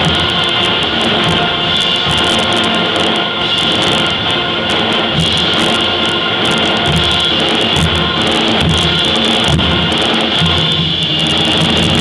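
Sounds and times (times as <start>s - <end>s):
concert band playing: 0.0s - 12.0s
percussion strokes: 0.0s - 12.0s.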